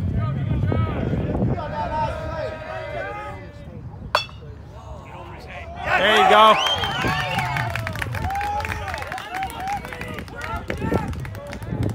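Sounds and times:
metal bat hitting ball: 4.2 - 4.6.

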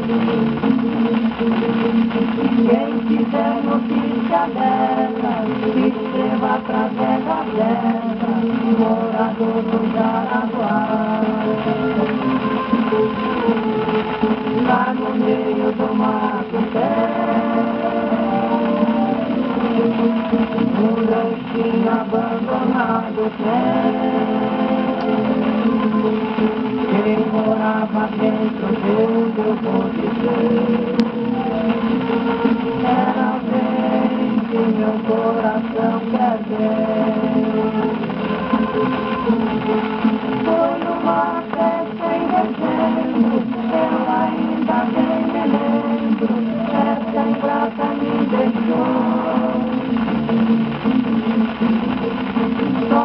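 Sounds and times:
band accompaniment: 0.0 - 53.0
old record of sung samba: 0.0 - 53.0.

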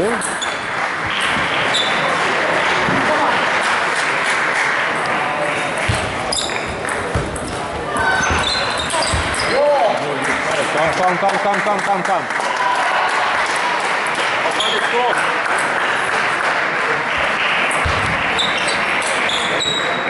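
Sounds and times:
background chatter: 1.0 - 20.0.

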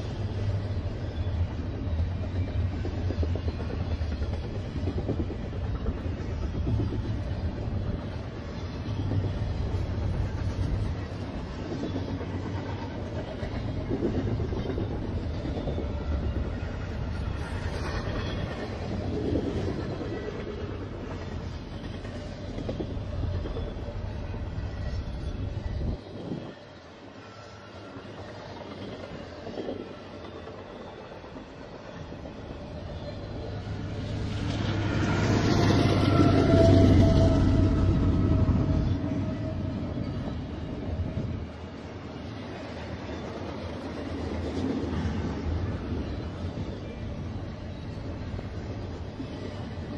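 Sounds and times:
freight train wheels rumbling: 0.0 - 49.9.

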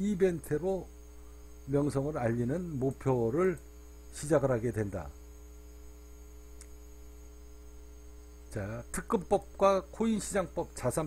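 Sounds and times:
electrical mains hum: 0.0 - 11.0
faint click: 6.5 - 6.8.

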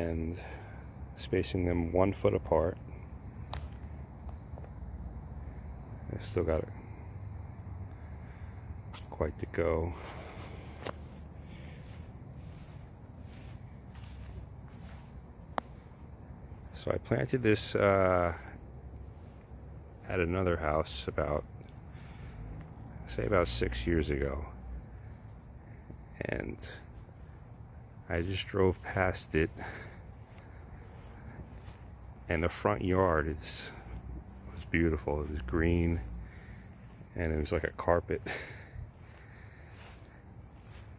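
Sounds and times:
insects trilling: 0.0 - 40.9.

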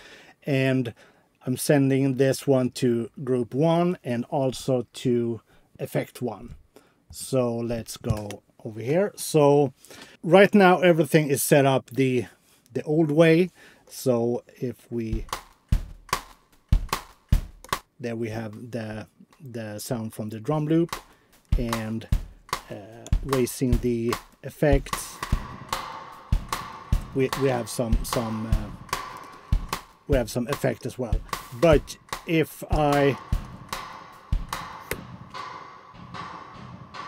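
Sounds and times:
drum loop with kick and snare: 15.1 - 18.6, 20.5 - 37.0.

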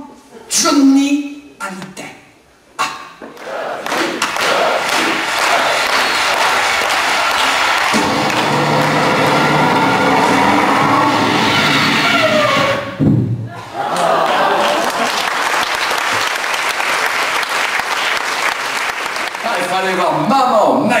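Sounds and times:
audience applauding and cheering: 3.4 - 19.9
music: 7.2 - 12.8.

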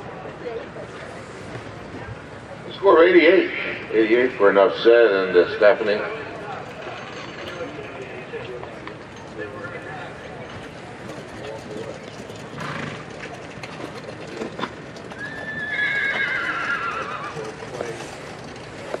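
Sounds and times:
low background talk: 0.0 - 15.7
horse whinnying: 12.6 - 13.1, 15.0 - 17.7.

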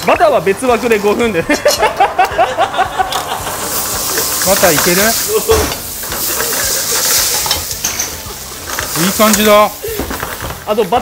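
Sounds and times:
food sizzling in a frying pan: 0.0 - 11.0
utensil scraping and clinking pan: 3.1 - 10.6.

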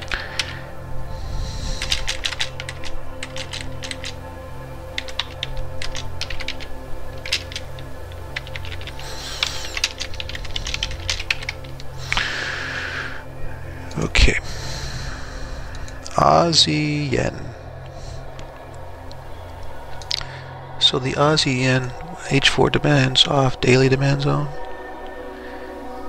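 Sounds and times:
typing on a computer keyboard: 1.8 - 4.2, 5.0 - 12.2.

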